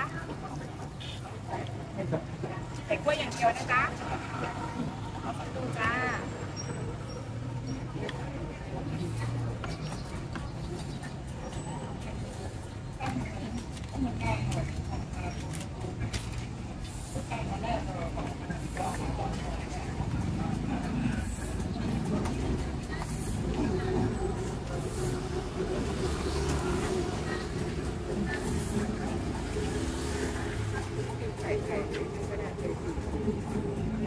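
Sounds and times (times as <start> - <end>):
street background noise: 0.0 - 34.0
traffic engine rumble: 0.0 - 34.0
voices talking: 0.0 - 34.0.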